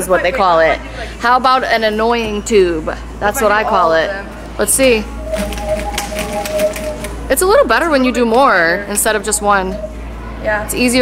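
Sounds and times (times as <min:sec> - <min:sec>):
whirled sound tubes hooting: 0:00.0 - 0:11.0
fast patter of clicks: 0:05.3 - 0:07.2.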